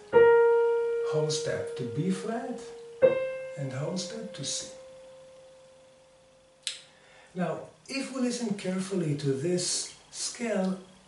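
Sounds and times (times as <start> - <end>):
piano note: 0.0 - 6.6.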